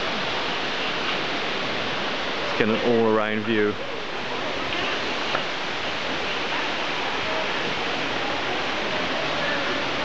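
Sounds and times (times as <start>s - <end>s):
steady rushing background noise: 0.0s - 10.0s.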